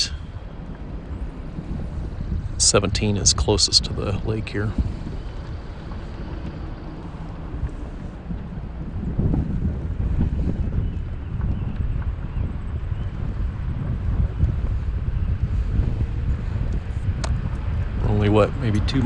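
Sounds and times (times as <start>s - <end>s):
low rumble of tyres and engine: 0.0s - 19.0s
wind buffeting microphone: 0.0s - 19.0s.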